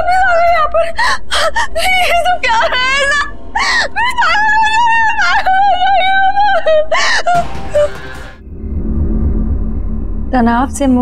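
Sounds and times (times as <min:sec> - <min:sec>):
woman wailing and sobbing: 0:00.0 - 0:08.4.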